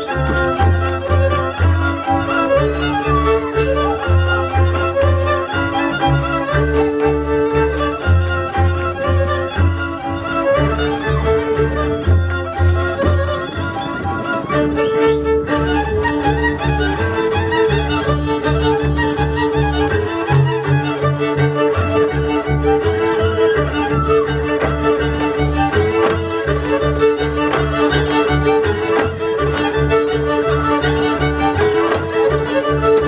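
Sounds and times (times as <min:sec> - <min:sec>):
folk dance fiddle music: 0:00.0 - 0:33.0.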